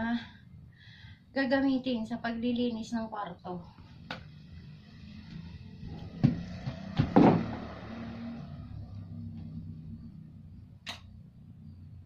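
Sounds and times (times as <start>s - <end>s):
steady low hum: 0.0s - 6.7s, 8.4s - 12.0s.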